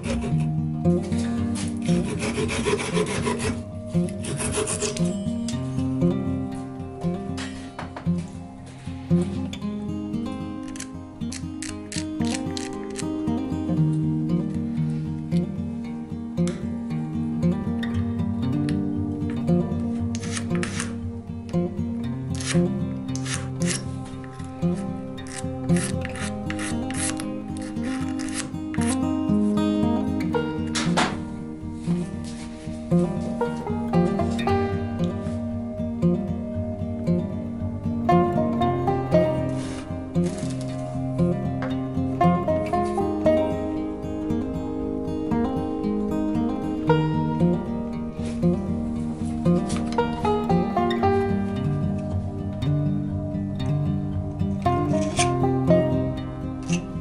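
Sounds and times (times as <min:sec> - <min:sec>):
hand file rasping on wood: 0:00.0 - 0:00.5, 0:01.8 - 0:05.1, 0:25.3 - 0:29.0
pull saw cutting wood: 0:00.0 - 0:00.5, 0:01.6 - 0:05.1, 0:25.2 - 0:29.0
acoustic guitar music: 0:00.0 - 0:57.0.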